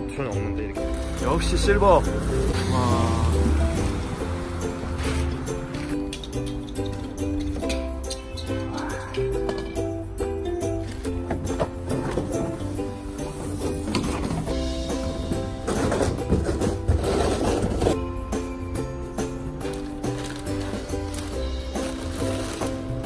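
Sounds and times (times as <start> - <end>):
background music: 0.0 - 23.0.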